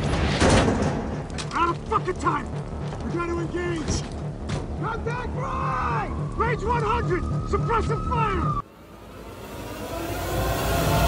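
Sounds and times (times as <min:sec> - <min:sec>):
pulsing trailer music beat: 0:00.0 - 0:11.0.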